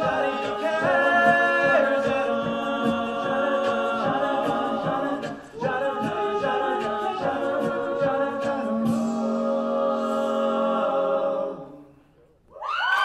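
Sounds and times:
male group singing harmony: 0.0s - 11.9s.

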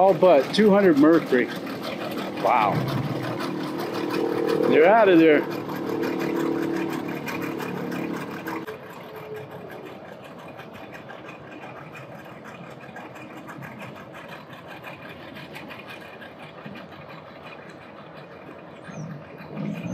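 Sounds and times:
outboard motor running: 0.0s - 19.9s.

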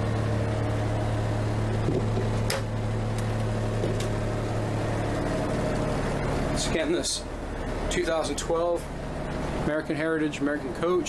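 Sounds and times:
diesel engine idling hum: 0.0s - 11.0s.

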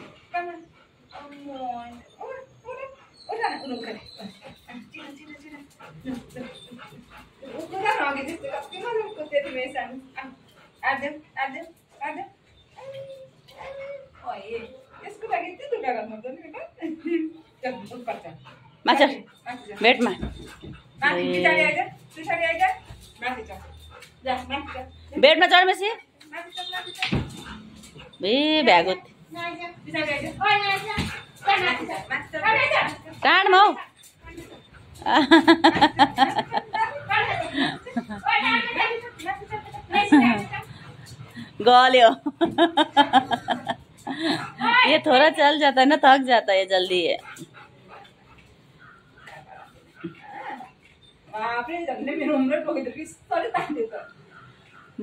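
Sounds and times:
dog whining softly: 1.5s - 7.6s, 12.5s - 15.2s
dog whining and yipping: 1.8s - 9.9s, 12.4s - 15.4s, 18.4s - 25.3s, 26.4s - 29.0s, 29.9s - 41.6s.

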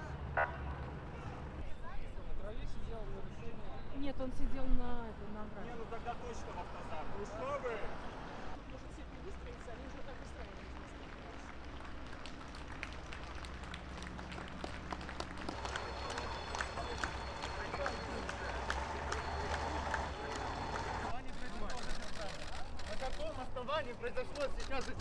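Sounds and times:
scattered clapping: 10.5s - 23.4s.

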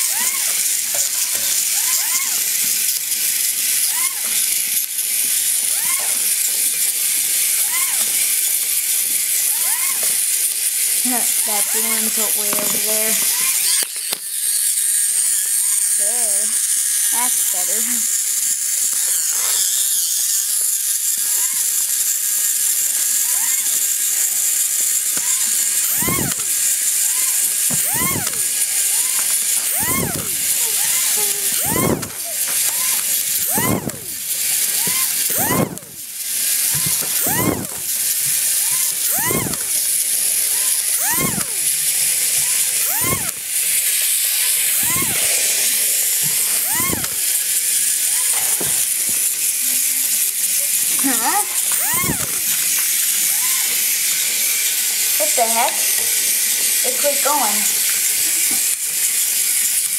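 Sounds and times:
toy robot motor whirring: 0.0s - 59.9s.

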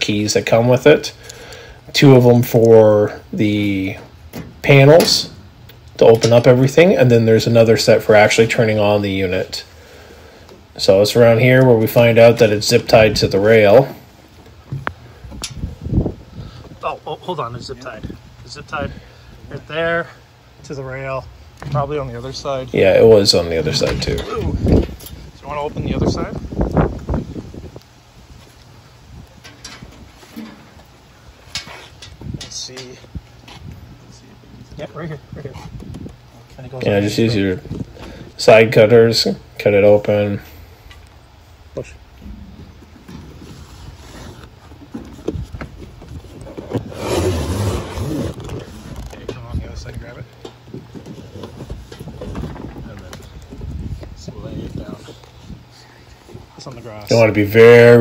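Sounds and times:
metal panels handled with clicks: 29.4s - 30.8s
rustling scrape: 31.4s - 32.3s, 42.3s - 49.3s.

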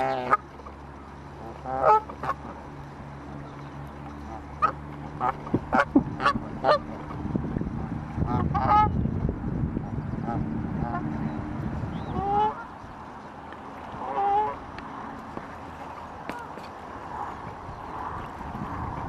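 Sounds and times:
geese honking: 0.0s - 0.5s, 1.3s - 2.6s, 4.1s - 7.2s, 8.2s - 9.0s, 10.2s - 11.2s, 12.0s - 12.9s, 13.9s - 14.7s
low rumbling noise: 0.0s - 19.0s.

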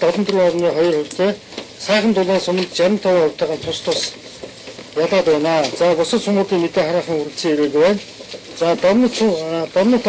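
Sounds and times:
man speaking: 0.0s - 4.2s, 5.0s - 10.0s.

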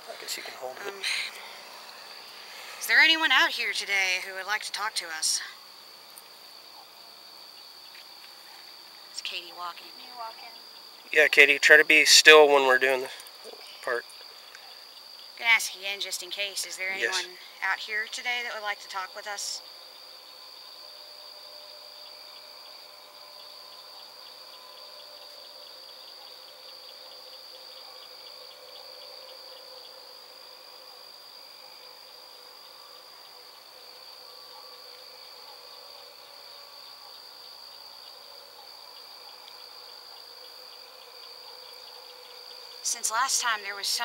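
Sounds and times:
night insects trilling: 0.0s - 44.0s.

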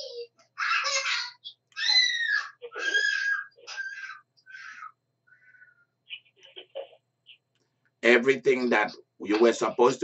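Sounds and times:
high-pitched voice screaming: 0.6s - 5.0s.

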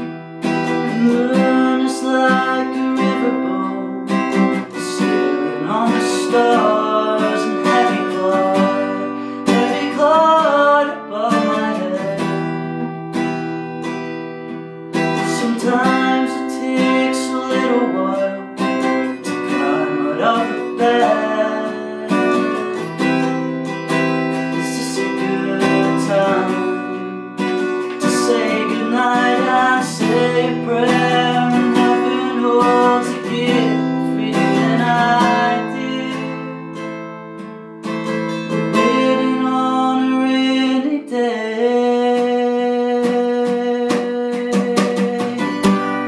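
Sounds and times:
man singing: 0.0s - 12.9s, 15.0s - 37.0s, 38.0s - 46.0s
acoustic guitar strumming chords: 0.0s - 46.0s.

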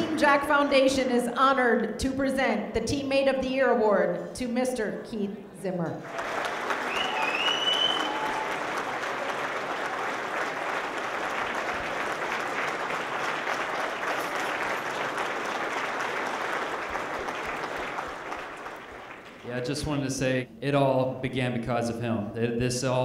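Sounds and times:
audience applauding: 6.0s - 20.0s
whistle: 6.8s - 8.6s.

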